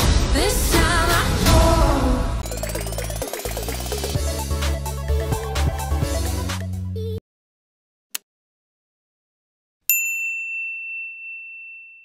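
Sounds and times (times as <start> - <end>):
high bell-like ding: 9.9 - 12.0.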